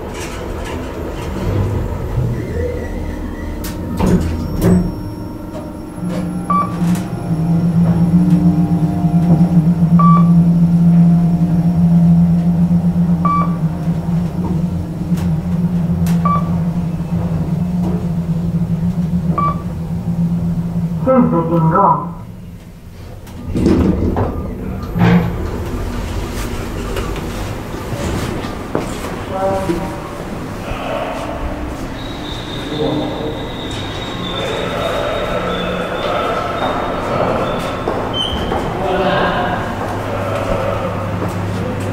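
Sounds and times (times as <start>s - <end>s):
lift doors sliding open: 0.0s - 21.5s, 22.3s - 41.9s
lift car humming: 0.0s - 41.9s
lift signal: 0.0s - 41.9s.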